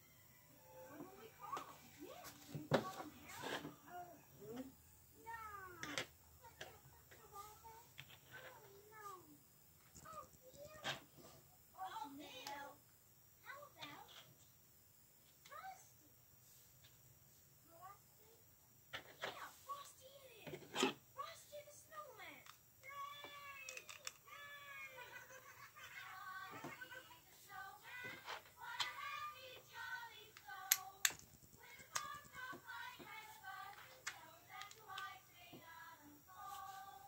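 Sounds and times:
plastic toy bricks clicking: 23.3 - 24.3.

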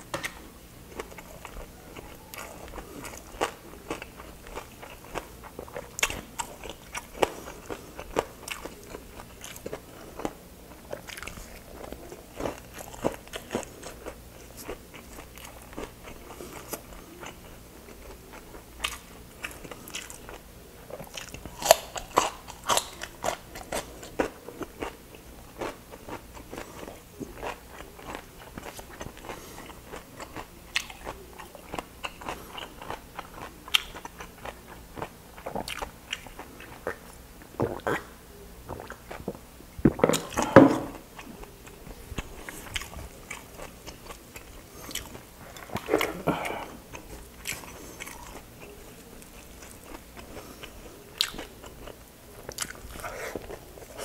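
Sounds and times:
cucumber crunching: 0.0 - 38.1, 38.7 - 54.0
person chewing crispy food: 0.0 - 54.0.

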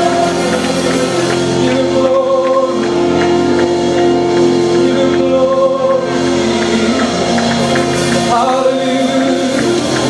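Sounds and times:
group singing praise music: 0.0 - 10.0
keyboard chords: 0.0 - 10.0.

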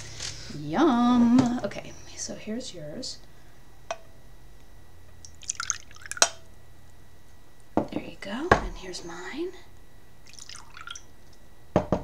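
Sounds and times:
tea sloshing in a teacup: 5.4 - 6.2, 10.3 - 11.1.

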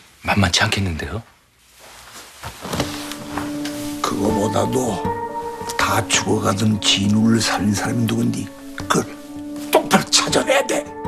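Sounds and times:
dramatic background score: 3.1 - 11.0.

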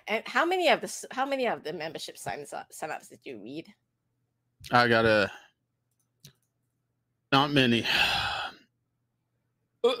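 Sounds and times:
breathy sigh: 7.8 - 8.7.

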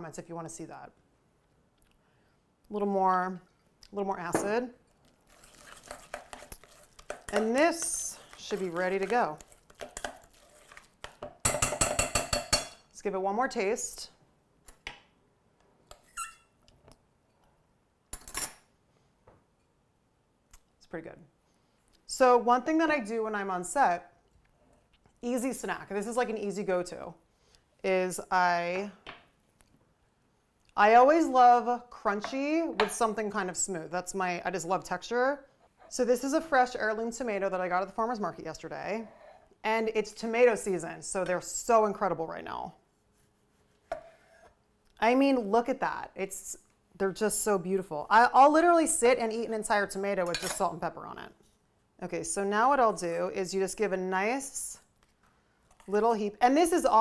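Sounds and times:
short squeak: 16.1 - 16.6.

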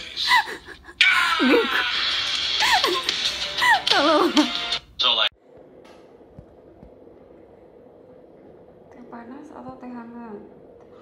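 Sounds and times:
music from a video: 1.8 - 4.8
faint steady hum: 4.8 - 11.0
voice from a video: 8.9 - 10.6.

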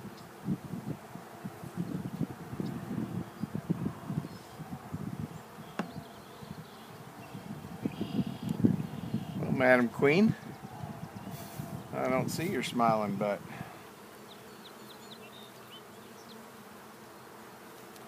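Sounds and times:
honey bees buzzing: 0.0 - 18.0.

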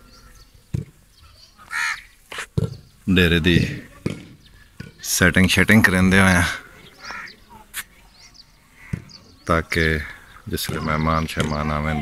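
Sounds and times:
crow cawing: 1.6 - 2.1, 7.0 - 7.4, 8.8 - 9.1.

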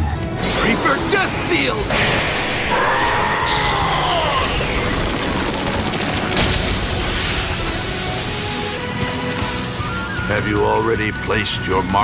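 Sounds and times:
rumbling and booming effects: 0.3 - 8.8.

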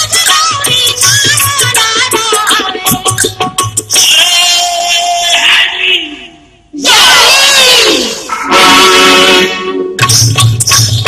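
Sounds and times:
loud drawn-out vocal cry: 4.0 - 9.6.

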